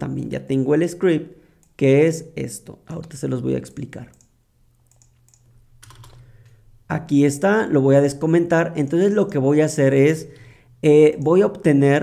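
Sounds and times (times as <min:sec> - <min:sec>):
low steady hum: 0:00.0 - 0:12.0
keyboard and mouse clicks: 0:04.0 - 0:06.6.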